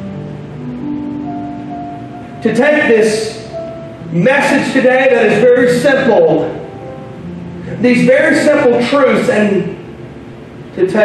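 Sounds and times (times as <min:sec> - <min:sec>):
soft keyboard chords: 0:00.0 - 0:11.0.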